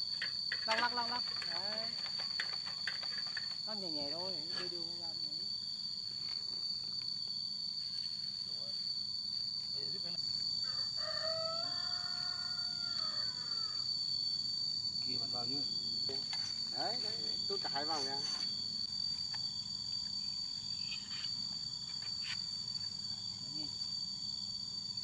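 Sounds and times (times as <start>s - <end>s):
high insect drone: 0.0s - 25.0s
rooster crowing: 10.6s - 14.0s.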